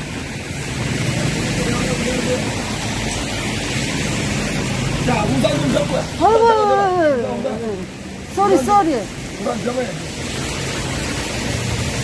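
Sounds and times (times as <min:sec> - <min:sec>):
rushing market background noise: 0:00.0 - 0:12.0.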